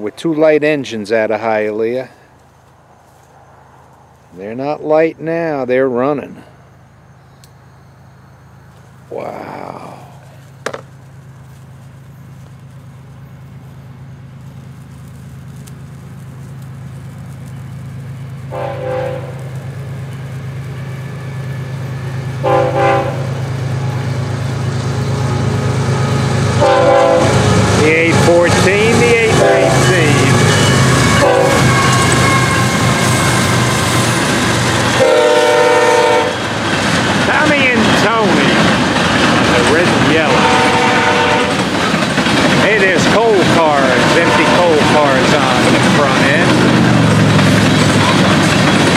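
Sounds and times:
diesel locomotive engines droning: 0.0s - 48.9s
train air horn blasts: 18.5s - 19.6s, 22.4s - 23.4s, 25.3s - 34.2s, 34.9s - 36.4s, 39.7s - 41.7s, 43.2s - 46.6s
freight car wheel clatter: 36.4s - 48.9s.

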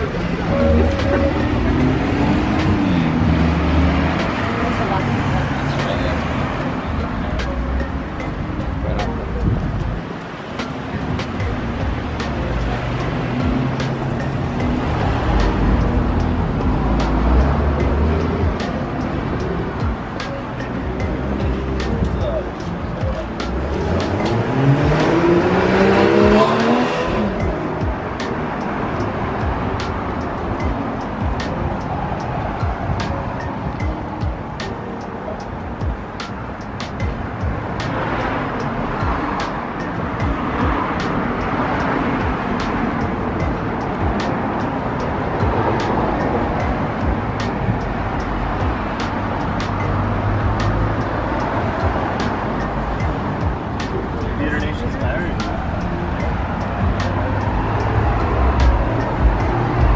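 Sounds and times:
street traffic noise: 0.0s - 59.9s
car accelerating past: 23.5s - 27.4s.

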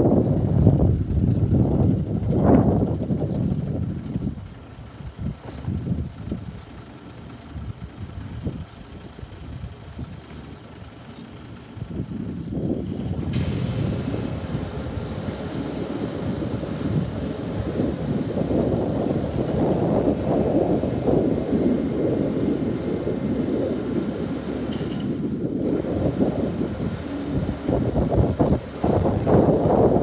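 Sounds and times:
garbage truck engine: 0.0s - 30.0s
wind buffeting microphone: 0.0s - 30.0s.

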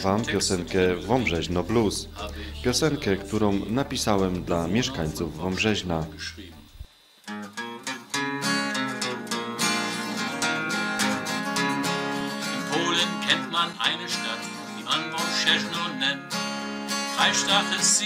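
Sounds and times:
man singing: 0.0s - 6.7s, 12.2s - 16.4s, 17.1s - 18.0s
acoustic guitar strumming: 0.0s - 18.0s.

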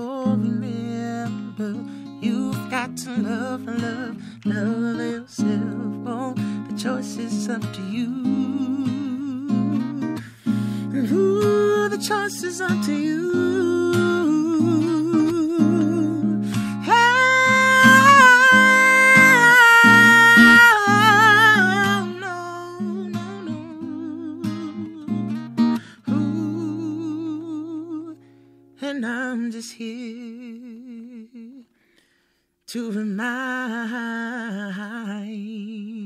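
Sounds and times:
man singing with vibrato: 0.0s - 31.7s, 32.7s - 36.0s
strummed acoustic guitar: 0.0s - 31.9s
man singing long vibrato note: 11.0s - 25.1s.

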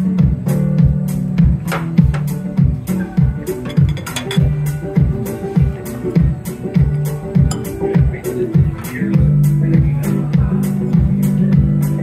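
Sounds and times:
steady drum beat: 0.2s - 11.8s.

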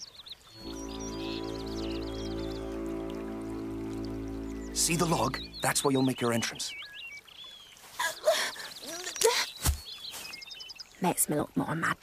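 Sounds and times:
high twittering trill: 0.6s - 6.7s
sustained low chord: 0.6s - 6.7s.

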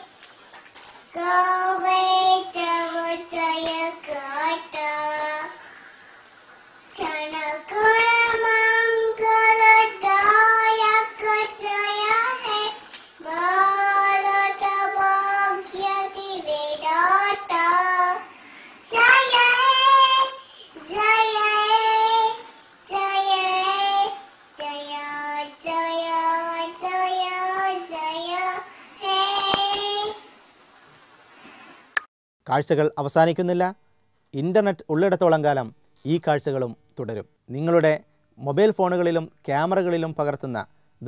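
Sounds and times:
toddler singing: 1.1s - 5.6s, 6.9s - 30.4s.

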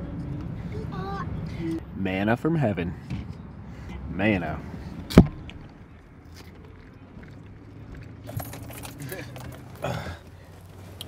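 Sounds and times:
metallic jingling and clicking: 8.0s - 10.2s.

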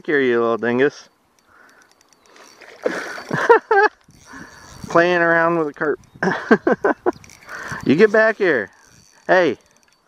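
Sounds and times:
faint ticks: 0.5s - 5.0s, 5.6s - 10.0s.

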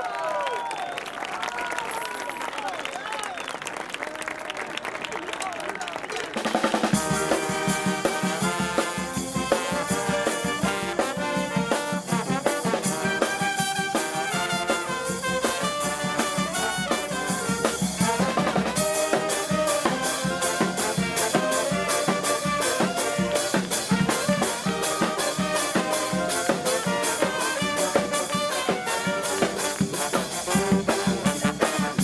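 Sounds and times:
street brass band playing: 6.3s - 32.0s.

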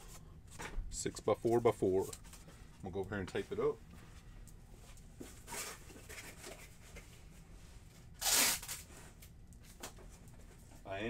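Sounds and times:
packing tape ripping off roll: 8.2s - 8.9s.

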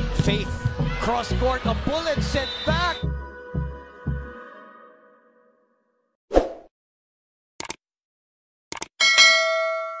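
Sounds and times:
quick double clicks: 8.7s - 8.9s
bell ding: 9.0s - 10.0s.

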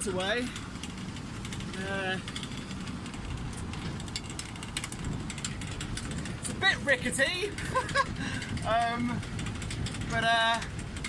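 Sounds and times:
cable car rumbling: 0.0s - 11.0s
pulley wheels clicking and rattling: 0.0s - 11.0s.

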